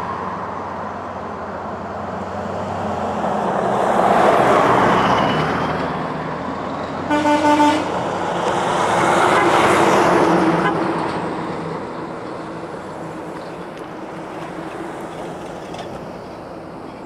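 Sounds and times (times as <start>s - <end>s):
vehicle passing on highway: 0.0s - 17.0s.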